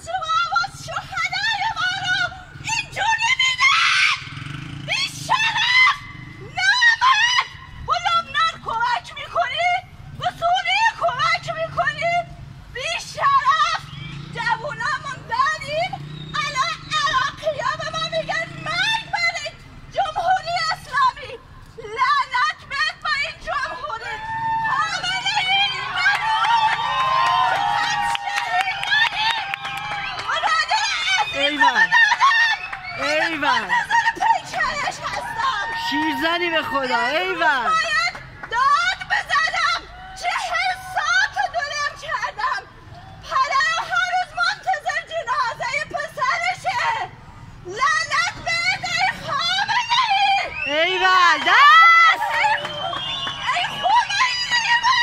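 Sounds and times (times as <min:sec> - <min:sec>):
people shouting and calling out: 0:00.0 - 0:55.0
woman screaming and shouting: 0:47.7 - 0:52.8.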